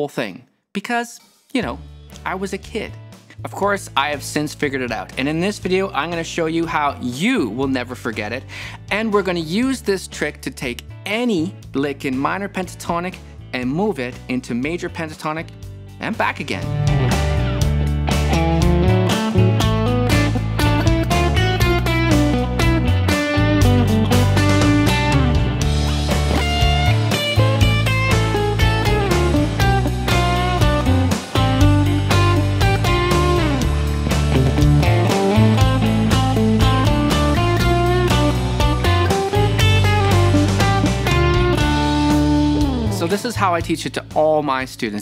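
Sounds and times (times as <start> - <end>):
bass and drums backing track: 1.5 - 45.0
electric guitar lead licks: 16.5 - 43.2.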